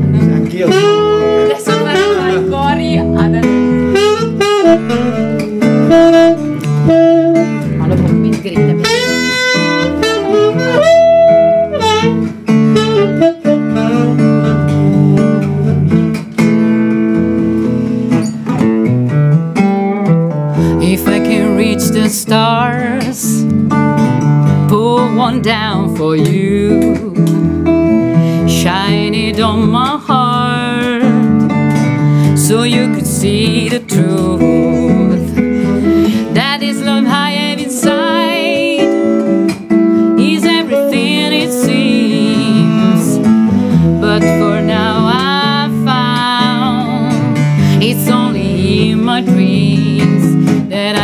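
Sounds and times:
saxophone melody: 0.0s - 18.9s, 26.8s - 50.5s
acoustic guitar accompaniment: 0.0s - 51.0s.

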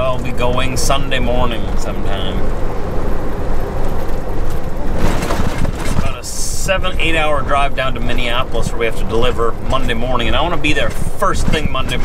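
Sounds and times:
rattling and clunking: 0.0s - 12.0s
truck diesel engine and tyres: 0.0s - 12.0s.

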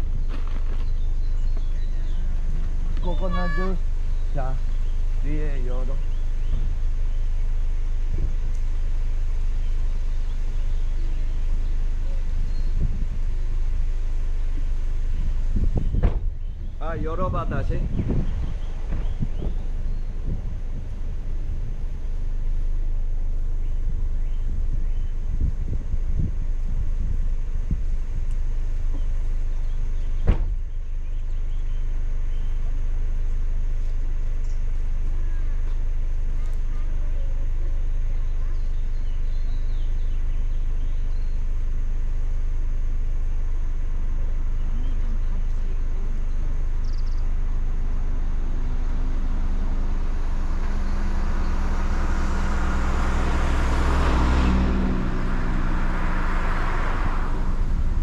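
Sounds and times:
car engine idling: 0.0s - 58.0s
sharp thump: 15.7s - 16.4s, 30.2s - 30.7s
cars passing: 44.2s - 58.0s.

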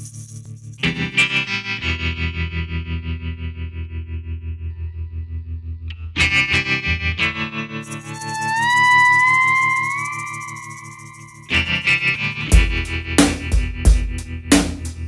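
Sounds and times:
loud guitar chords: 6.0s - 14.6s
distorted electric guitar pulsing: 6.2s - 13.8s.

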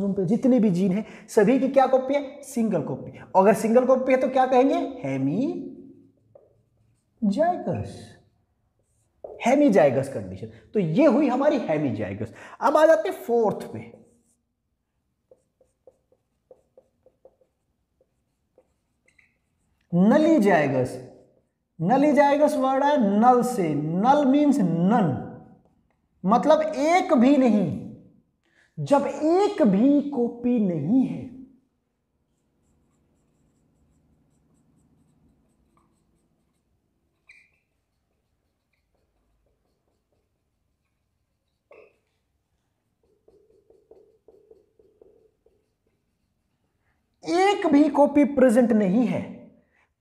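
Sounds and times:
marker pen writing on whiteboard: 4.2s - 7.7s, 8.4s - 10.2s, 12.9s - 21.7s, 25.4s - 26.7s, 32.1s - 47.7s.

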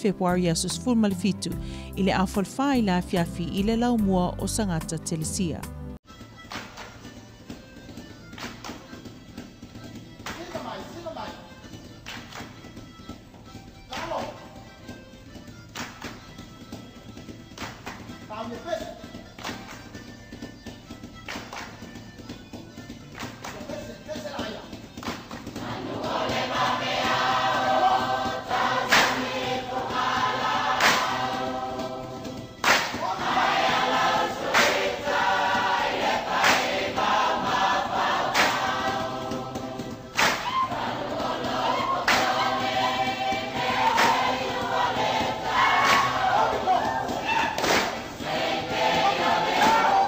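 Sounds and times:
group of voices singing: 25.5s - 50.0s
sharp percussive strike: 28.5s - 31.5s, 32.6s - 35.3s, 36.0s - 40.6s.

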